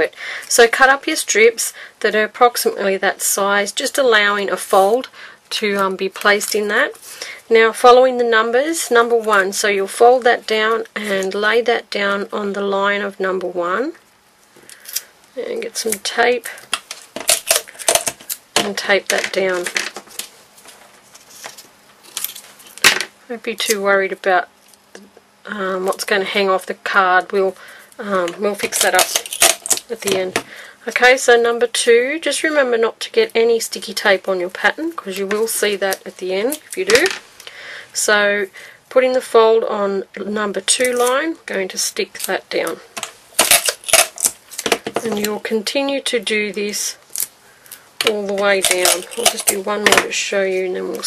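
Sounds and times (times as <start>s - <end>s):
rustling scrapes: 19.4s - 22.8s
sticky tape crackles and clicks: 28.6s - 30.2s
sticky tape handling: 48.0s - 49.9s.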